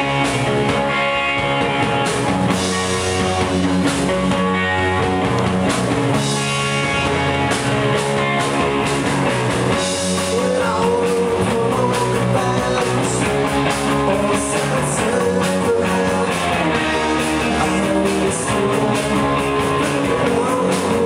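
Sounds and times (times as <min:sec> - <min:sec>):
drum kit: 0:00.0 - 0:21.0
electric guitars: 0:00.0 - 0:21.0.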